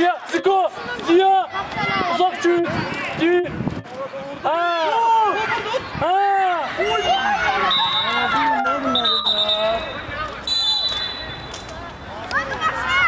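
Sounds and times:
people shouting: 4.4 - 11.3
thin high whistle tone: 7.6 - 11.6.

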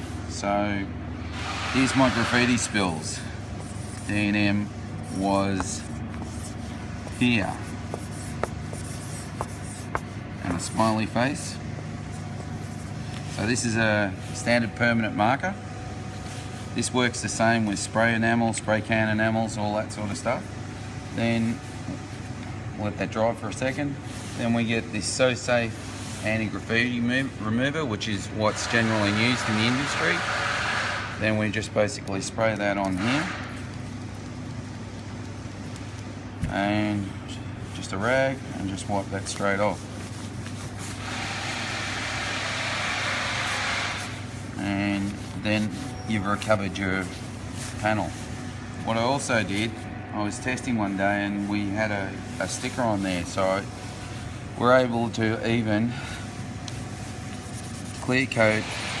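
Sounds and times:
steady low hum: 0.0 - 59.0
marker writing on a panel: 3.5 - 10.9.

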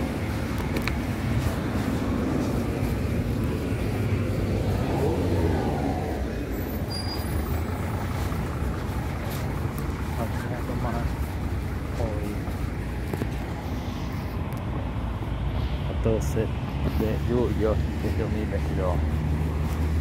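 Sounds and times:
traffic rumble: 0.0 - 20.0
vehicle passing close: 0.0 - 20.0.

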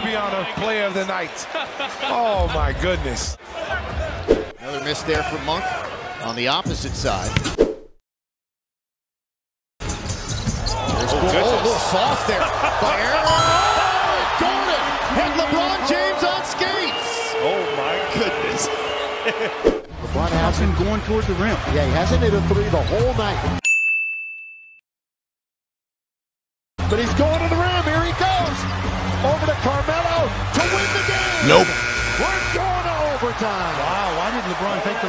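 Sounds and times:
arena crowd noise: 0.0 - 7.4, 10.6 - 23.6, 26.8 - 35.0
bright bell-like ding: 23.7 - 24.8.

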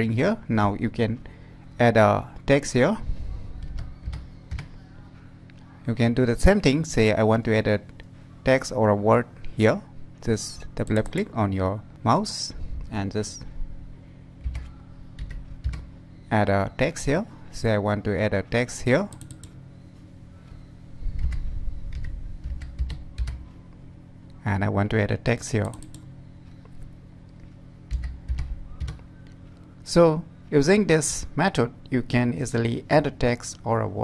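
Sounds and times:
computer keyboard keys clicking: 10.8 - 11.3, 14.4 - 15.9, 19.1 - 19.5, 21.2 - 23.4, 25.6 - 26.1, 27.9 - 29.0
keyboard and mouse clicks: 10.8 - 11.3, 19.1 - 19.6, 25.6 - 26.1.

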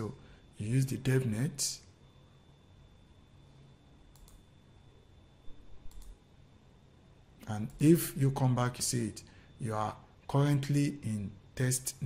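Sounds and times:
faint computer mouse clicks: 4.1 - 4.4, 5.8 - 6.2.

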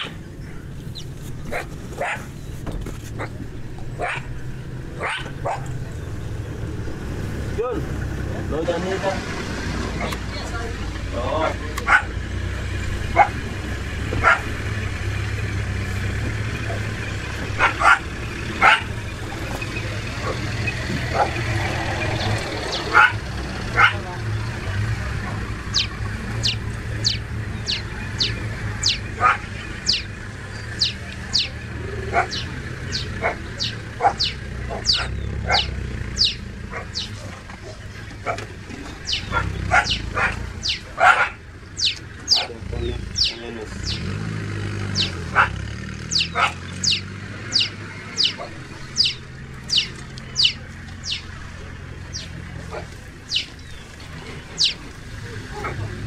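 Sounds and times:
sharp animal calls: 0.0 - 2.5, 3.1 - 6.4, 11.1 - 56.0
low engine hum: 0.0 - 56.0.

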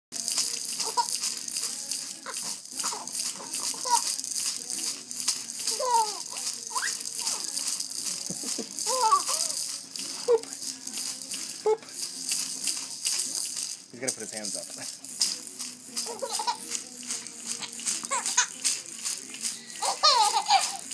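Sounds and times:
baby toy ball rattling: 0.2 - 20.9.

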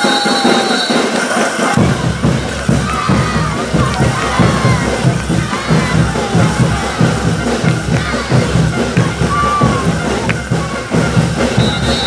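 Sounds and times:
brass band playing: 0.0 - 12.0
crowd noise: 0.0 - 12.0
deep bass drums: 1.8 - 12.0.

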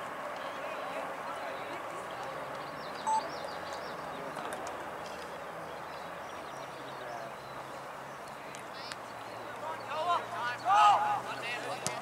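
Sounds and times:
faint bird chirps: 2.8 - 3.9.

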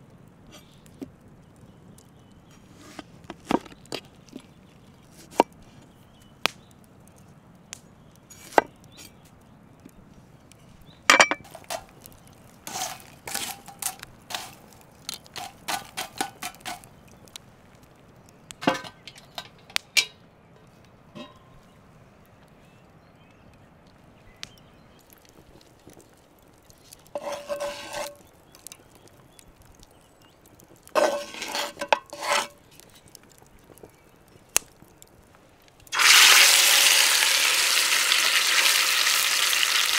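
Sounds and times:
sharp cracks and clicks: 6.4 - 7.9, 32.6 - 36.0.

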